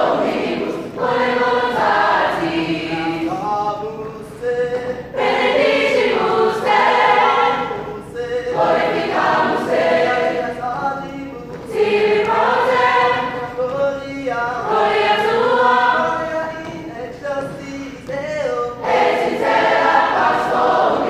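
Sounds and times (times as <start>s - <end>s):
chorus of mixed voices singing: 0.0s - 16.7s, 18.5s - 21.0s.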